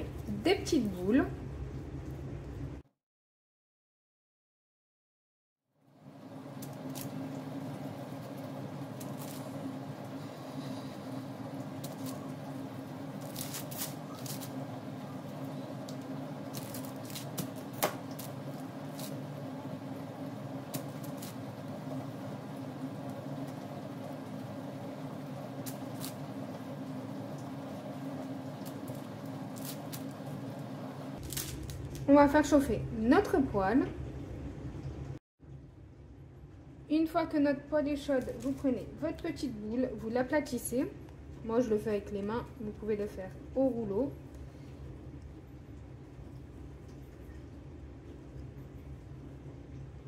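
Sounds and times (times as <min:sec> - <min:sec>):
low hum with held pitches: 0:00.0 - 0:02.8, 0:06.0 - 0:50.0
dough rolling clicks and rustles: 0:11.6 - 0:19.4.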